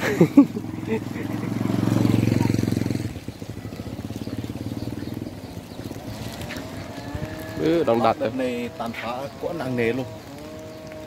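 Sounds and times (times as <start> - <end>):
motorbike engine passing: 0.0 - 11.0.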